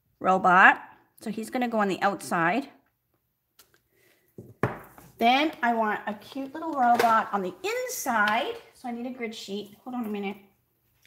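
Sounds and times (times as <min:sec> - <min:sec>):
stamp block knocking on wooden desk: 0:04.4 - 0:04.9.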